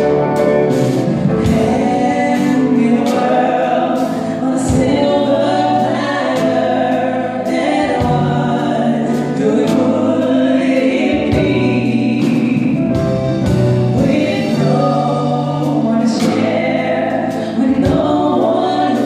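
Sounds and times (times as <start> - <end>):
piano accompaniment: 0.0 - 19.0
man and woman singing duet: 1.3 - 19.0.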